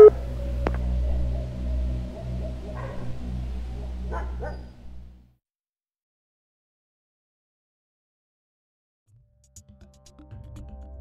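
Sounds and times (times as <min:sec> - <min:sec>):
low hum: 0:00.0 - 0:05.3
dog barking: 0:02.7 - 0:03.2, 0:04.1 - 0:04.8.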